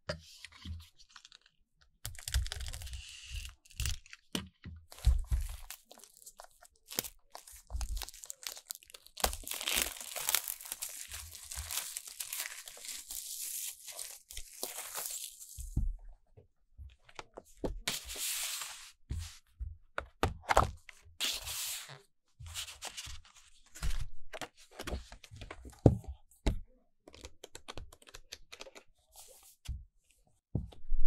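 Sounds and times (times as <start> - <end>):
plastic film crinkling: 5.2 - 15.8
plastic shrink wrap crackling: 5.3 - 15.6.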